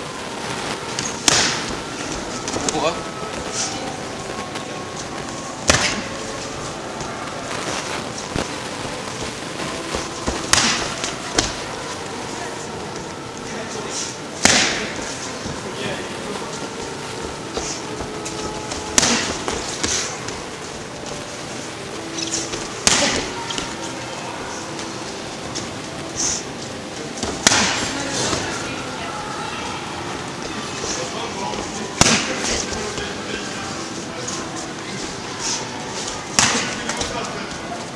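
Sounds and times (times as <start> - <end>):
boxing gloves striking focus mitts: 9.9 - 11.6, 14.4 - 15.0, 19.0 - 20.1, 36.4 - 37.1.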